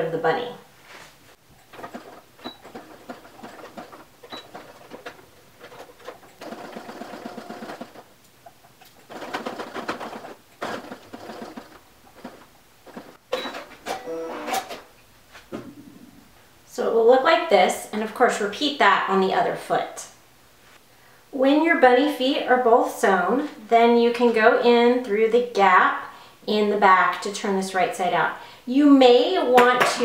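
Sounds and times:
sewing machine stitching: 1.7s - 8.1s, 9.0s - 14.8s.

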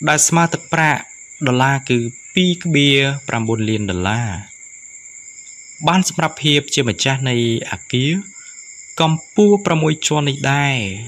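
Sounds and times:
narrator speaking: 0.0s - 4.5s, 5.8s - 8.4s, 9.0s - 11.0s
high-pitched two-tone whine: 0.0s - 11.0s.

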